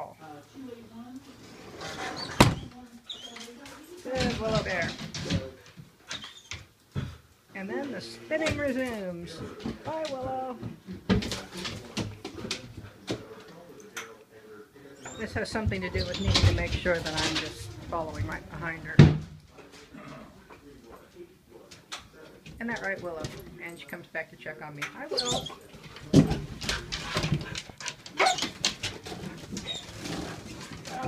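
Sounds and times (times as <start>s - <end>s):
dog claws clicking on floor: 24.8s - 31.0s.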